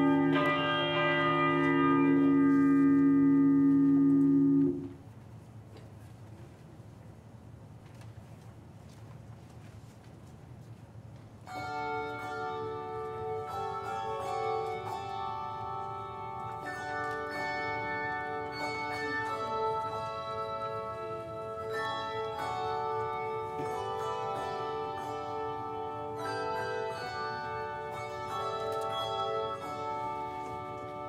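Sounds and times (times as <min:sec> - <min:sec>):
handbell choir playing: 0:00.0 - 0:04.6, 0:11.7 - 0:31.0.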